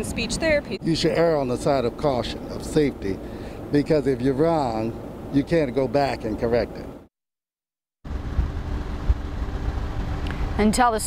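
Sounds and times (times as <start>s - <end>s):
steady low rumble: 8.1s - 11.0s.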